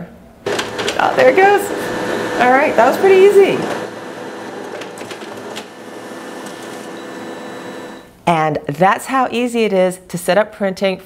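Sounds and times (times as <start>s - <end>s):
printer whirring: 0.4s - 8.1s
printer click: 0.5s - 2.2s, 3.6s - 8.0s.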